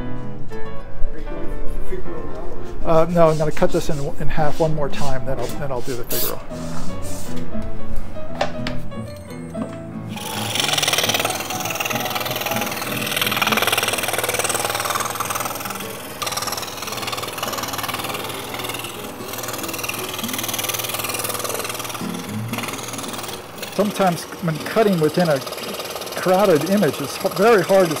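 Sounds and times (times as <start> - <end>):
background music: 0.0 - 28.0
scroll saw cutting wood: 3.0 - 7.4, 10.1 - 28.0.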